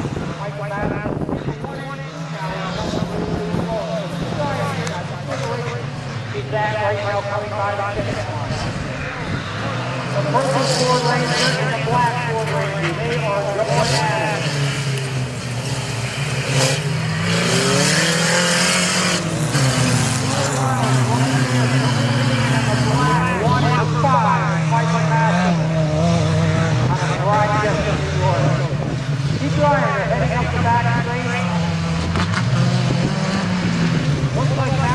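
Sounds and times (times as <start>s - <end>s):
truck engines revving: 0.0s - 34.9s.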